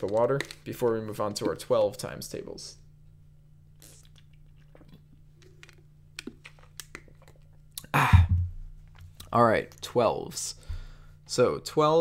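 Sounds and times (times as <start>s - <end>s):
steady low hum: 0.0s - 12.0s
person swallowing: 3.8s - 5.0s, 7.8s - 9.2s.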